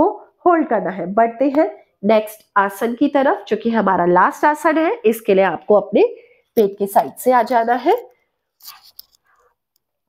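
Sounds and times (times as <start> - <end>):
faint breathing: 6.2 - 6.6.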